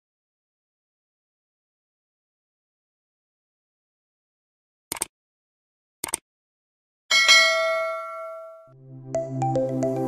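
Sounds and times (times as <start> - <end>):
notification bell chime: 7.1 - 8.7.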